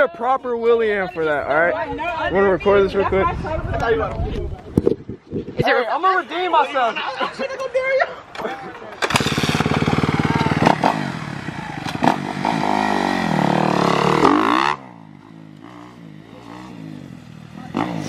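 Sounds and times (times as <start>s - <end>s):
dirt bike engine revving: 9.0s - 18.0s.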